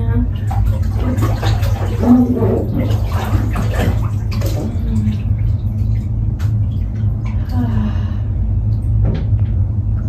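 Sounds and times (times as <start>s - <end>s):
water sloshing in a pool: 0.0s - 8.1s
steady low hum: 0.0s - 10.0s.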